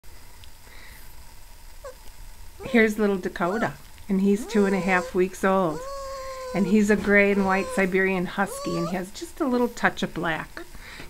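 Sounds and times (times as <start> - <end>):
puppy squeaking: 2.6 - 9.1.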